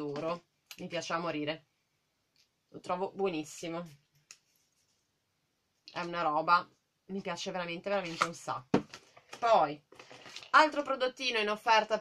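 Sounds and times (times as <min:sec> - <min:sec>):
person speaking: 0:00.0 - 0:01.6, 0:02.7 - 0:04.0, 0:05.9 - 0:09.9.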